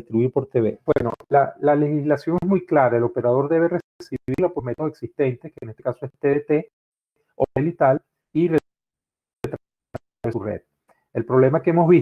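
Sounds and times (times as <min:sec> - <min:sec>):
man speaking: 0:00.0 - 0:06.7, 0:07.4 - 0:08.6, 0:10.2 - 0:10.6, 0:11.2 - 0:12.0.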